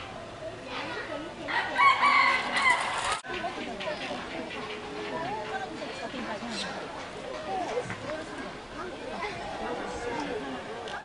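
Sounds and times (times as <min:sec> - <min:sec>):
faint background voices: 0:00.0 - 0:11.0
rooster crowing: 0:01.5 - 0:03.1.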